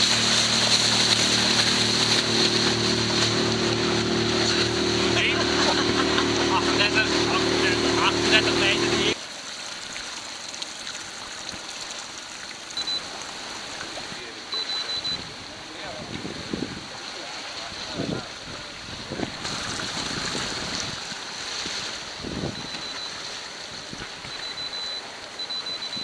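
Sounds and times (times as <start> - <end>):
motorboat engine running: 0.0 - 9.2, 22.2 - 26.0
water washing: 0.0 - 15.1, 16.2 - 25.8
wind and water rushing: 0.0 - 26.0
man calling out: 5.0 - 9.2.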